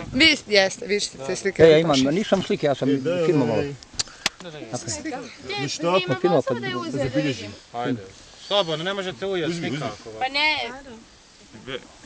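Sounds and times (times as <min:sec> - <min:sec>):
people talking: 0:00.0 - 0:03.8, 0:04.4 - 0:11.0.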